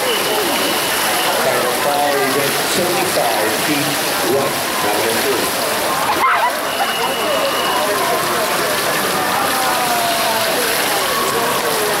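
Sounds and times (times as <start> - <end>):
swimmers splashing: 0.0 - 12.0
spectators shouting: 4.4 - 12.0.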